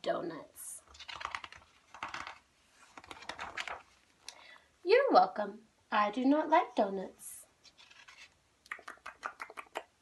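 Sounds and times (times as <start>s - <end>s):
book pages turning: 0.8s - 4.2s, 7.6s - 8.4s.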